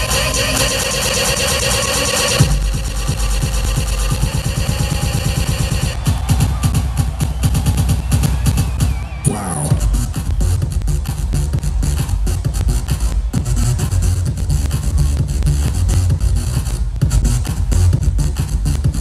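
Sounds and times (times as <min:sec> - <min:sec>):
electronic dance music: 0:00.0 - 0:19.0
fast kick-drum beat: 0:00.0 - 0:19.0
heavy bass: 0:00.0 - 0:19.0.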